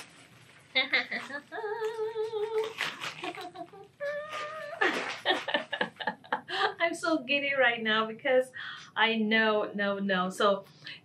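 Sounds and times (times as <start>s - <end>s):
bubble wrap crinkling: 0.0s - 6.1s
woman humming: 0.8s - 5.0s.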